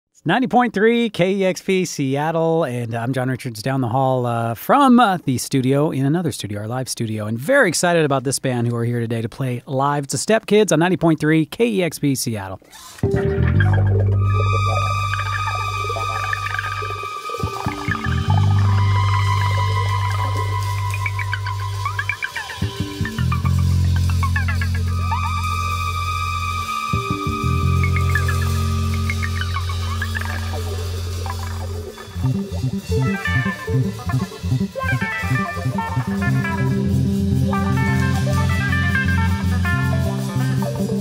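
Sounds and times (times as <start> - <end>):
electric bass low note: 13.0 - 41.0
live band playing: 13.0 - 41.0
low drone: 13.1 - 40.4.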